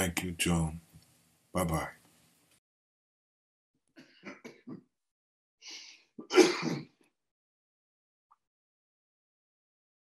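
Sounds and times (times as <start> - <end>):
man coughing: 6.2 - 7.0.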